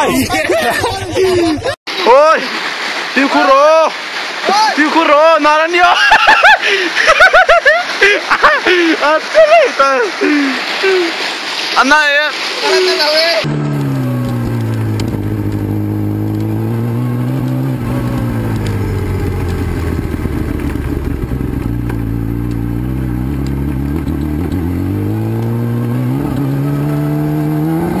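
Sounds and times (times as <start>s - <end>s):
motorcycle engine revving: 13.4s - 28.0s.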